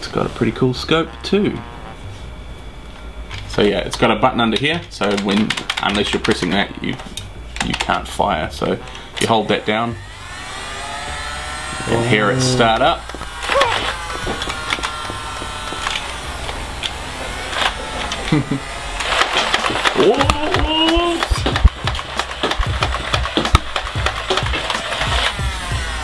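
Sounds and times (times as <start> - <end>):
toy blaster motor whining: 8.6 - 26.0
people laughing: 18.0 - 19.0
rapid clacking dart shots: 19.1 - 25.5.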